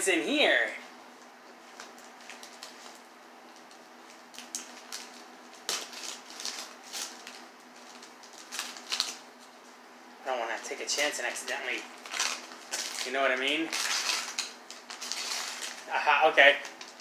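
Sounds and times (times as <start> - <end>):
paper rustling and crinkling: 1.6 - 9.5, 11.4 - 17.0.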